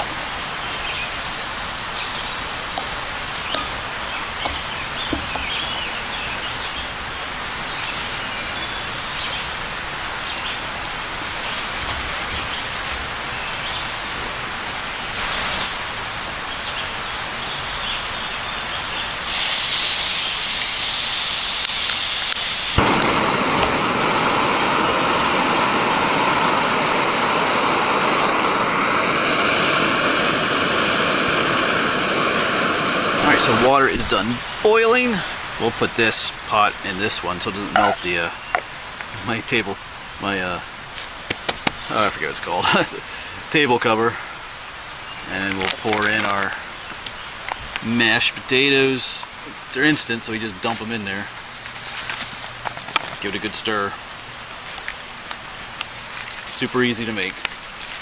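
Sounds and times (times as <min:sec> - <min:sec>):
running water rushing: 0:00.0 - 0:16.5, 0:19.0 - 0:40.9
gas stove burner hissing: 0:02.5 - 0:06.4, 0:19.2 - 0:34.1.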